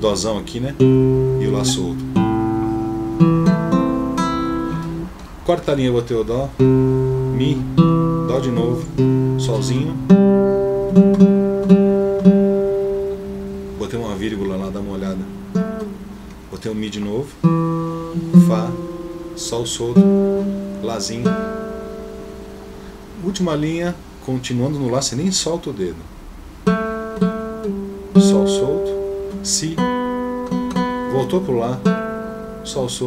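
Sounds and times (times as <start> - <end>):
classical guitar notes plucked: 0.0 - 5.4, 6.5 - 24.2, 26.6 - 33.0.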